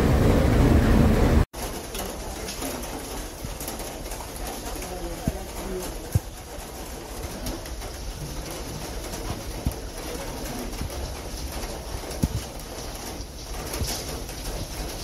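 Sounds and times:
cog railway running: 0.0s - 15.0s
rain: 0.0s - 15.0s.

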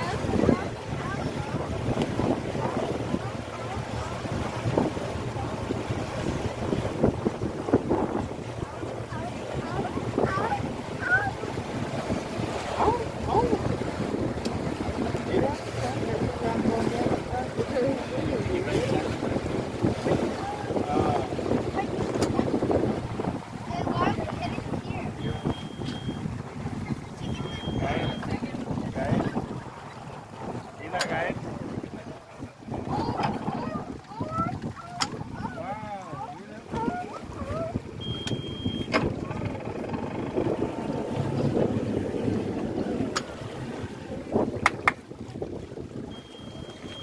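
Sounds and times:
jumble of voices: 0.0s - 44.6s
boat running on water: 0.0s - 47.0s
wind buffeting microphone: 0.0s - 47.0s.

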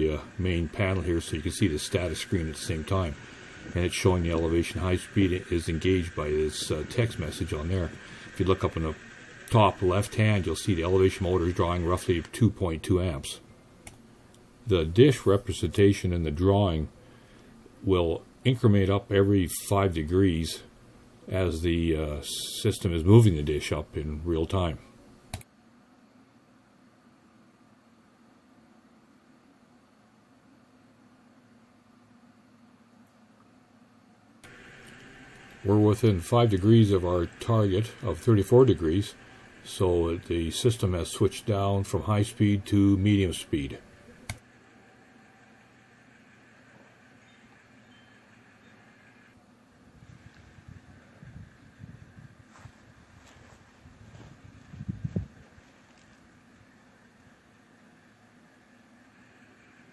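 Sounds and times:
low hum and hiss: 0.0s - 59.9s
wind gusting on microphone: 49.9s - 55.7s.

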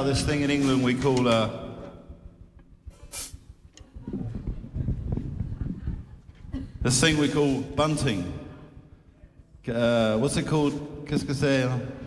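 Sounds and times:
faint audience noise: 0.0s - 12.0s
short hiss: 2.9s - 3.5s.

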